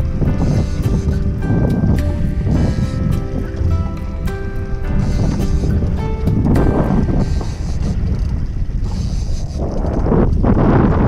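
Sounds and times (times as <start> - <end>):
water washing under boat: 0.0 - 11.0
wind buffeting microphone: 0.0 - 11.0.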